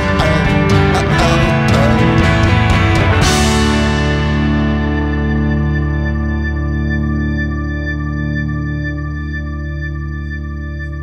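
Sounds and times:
rock song with electric guitar: 0.0s - 11.0s.

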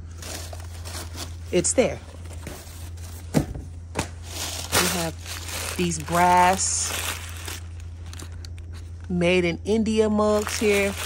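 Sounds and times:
packing paper rustling: 0.0s - 3.3s, 4.0s - 8.9s, 10.3s - 11.0s.

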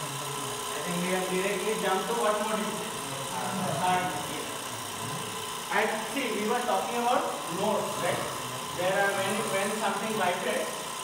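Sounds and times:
small electric motor running: 0.0s - 11.0s.

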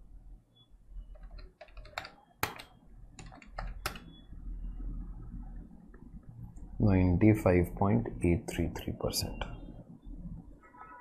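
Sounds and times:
keys tapping: 1.1s - 4.1s.

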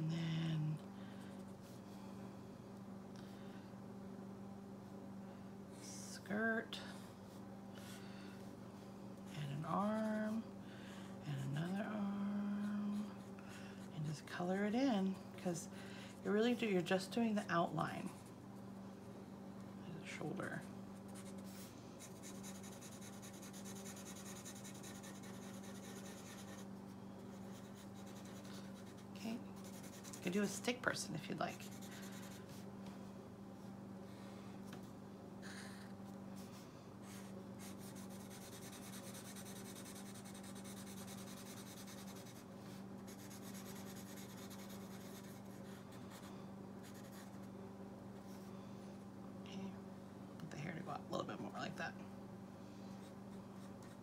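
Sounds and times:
steady low hum: 0.0s - 54.0s
marker scratching on paper: 22.0s - 26.7s.

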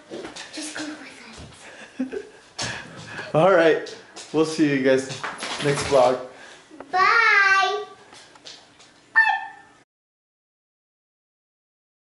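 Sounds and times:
short high-pitched cry: 9.2s - 9.8s.

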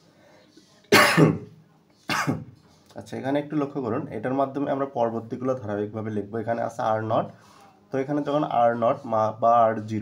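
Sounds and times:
man coughing: 0.9s - 1.5s, 2.1s - 2.5s.

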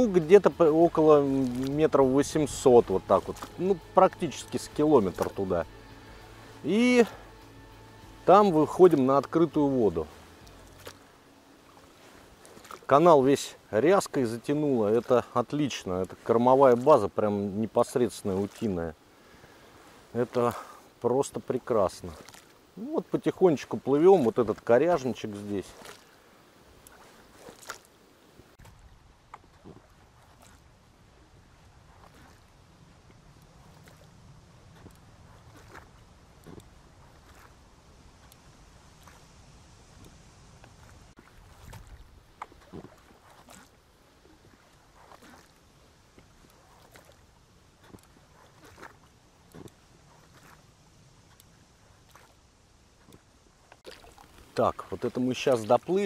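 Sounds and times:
low hush of water: 0.0s - 56.0s
oars splashing water: 0.0s - 56.0s.

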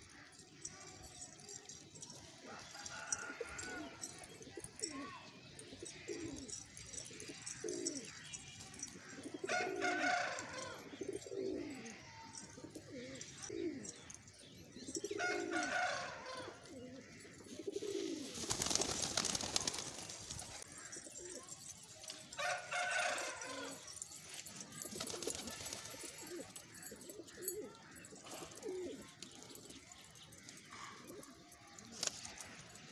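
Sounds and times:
pigeons cooing: 0.1s - 32.9s.

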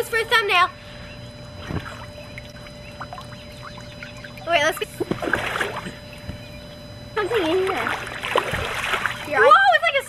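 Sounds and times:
water splashing in paddling pool: 1.6s - 6.2s, 7.2s - 9.6s.

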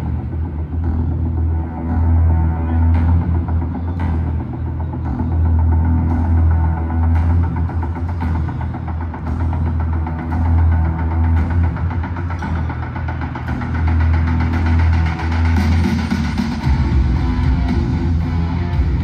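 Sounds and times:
deep throbbing drone over speakers: 0.0s - 19.0s
heavy distorted guitar: 0.0s - 19.0s.

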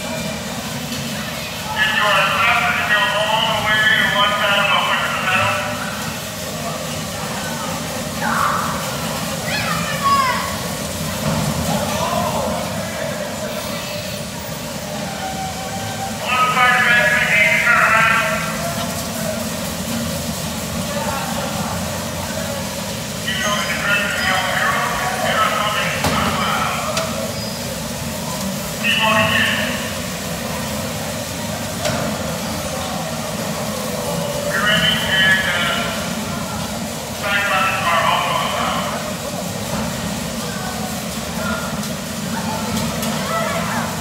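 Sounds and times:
bumper cars rumbling: 0.0s - 44.0s
riders' voices: 0.0s - 44.0s
high-pitched voice calling out: 9.4s - 10.6s.

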